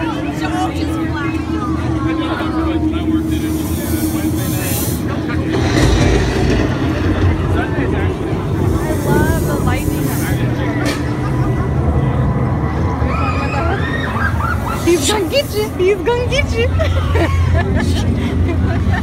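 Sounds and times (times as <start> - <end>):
crowd chatter: 0.0 - 19.0
low rumble from sound system: 0.0 - 19.0
fog machine hissing blasts: 3.0 - 11.8, 14.4 - 16.6.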